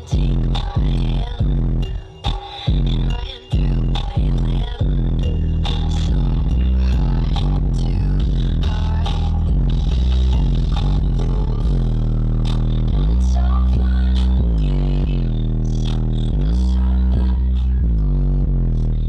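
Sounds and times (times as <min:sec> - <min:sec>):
bass-heavy music in car: 0:00.0 - 0:19.0.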